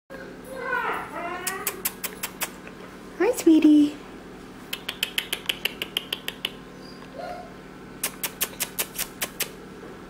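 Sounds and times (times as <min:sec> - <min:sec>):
puppy whining: 0:00.1 - 0:02.6, 0:05.8 - 0:07.6
sharp clicks: 0:04.7 - 0:06.6.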